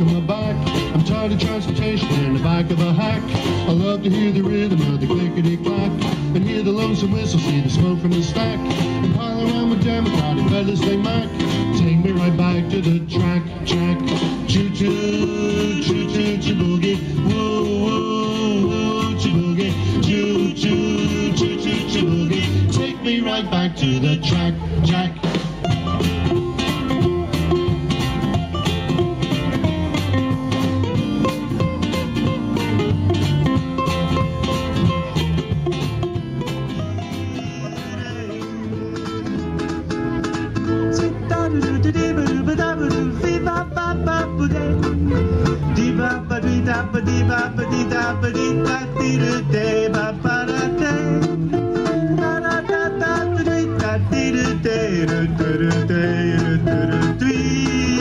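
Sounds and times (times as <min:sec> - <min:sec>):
drums: 0:00.0 - 0:58.0
ukuleles strumming: 0:00.0 - 0:58.0
upright double bass: 0:00.0 - 0:58.0.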